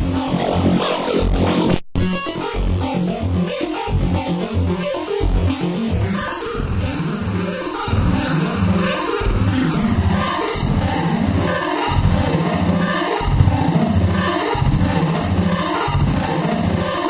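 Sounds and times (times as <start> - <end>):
synthesizer pulsing bass notes: 0.0 - 17.0.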